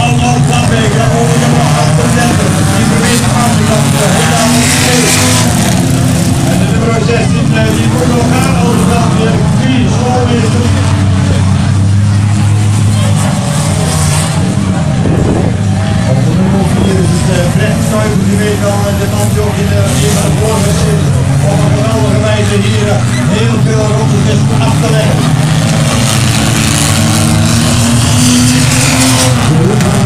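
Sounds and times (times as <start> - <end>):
racing car engines revving: 0.0 - 30.0.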